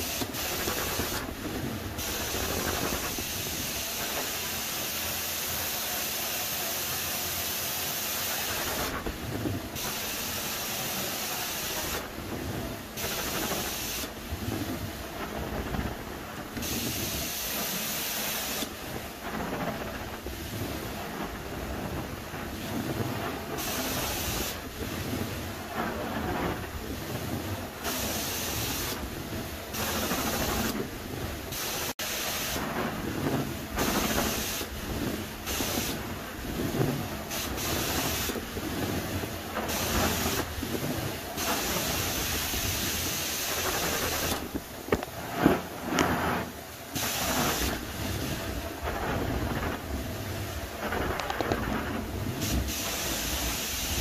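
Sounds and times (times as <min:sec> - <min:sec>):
water spray hissing: 0:00.0 - 0:12.2, 0:12.9 - 0:14.4, 0:16.6 - 0:19.2, 0:22.6 - 0:25.2, 0:27.7 - 0:30.8, 0:31.4 - 0:32.8, 0:33.7 - 0:49.4, 0:52.2 - 0:54.0.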